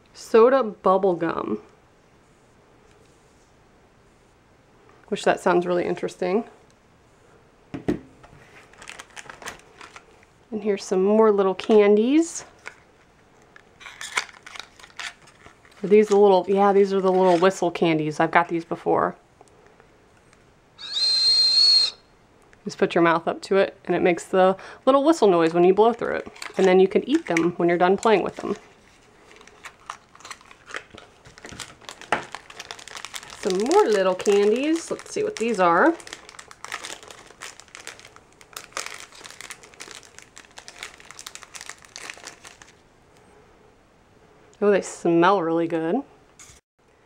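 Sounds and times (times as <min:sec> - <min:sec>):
plastic wrapper crinkling: 0:08.4 - 0:10.3, 0:12.6 - 0:17.6, 0:25.4 - 0:42.8
high breathy whistle: 0:20.8 - 0:22.1.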